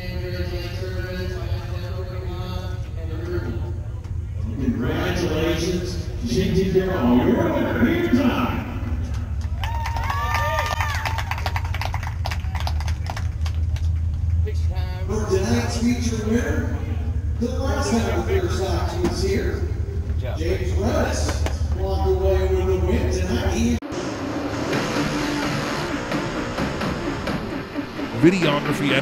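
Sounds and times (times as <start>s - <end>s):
low hum: 0.0s - 29.0s
race car engine revving: 0.0s - 29.0s
music: 23.8s - 29.0s.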